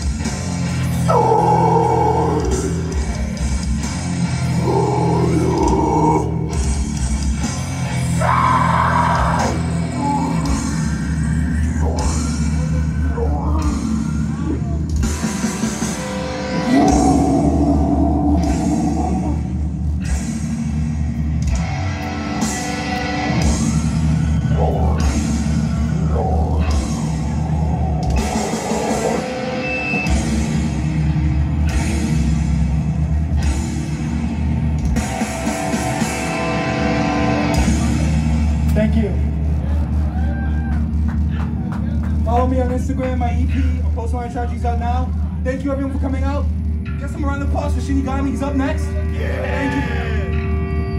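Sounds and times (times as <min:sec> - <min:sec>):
heavy rock band playing: 0:00.0 - 0:42.4, 0:46.5 - 0:50.9.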